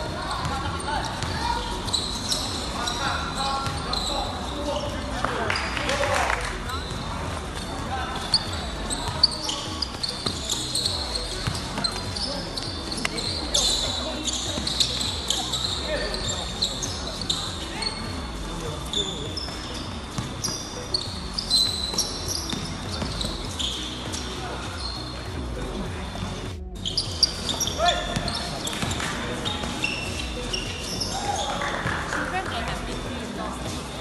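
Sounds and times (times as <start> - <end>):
sneakers squeaking on court: 0.0 - 5.7, 6.7 - 25.2, 26.8 - 33.1
basketball bouncing on court: 19.4 - 20.6.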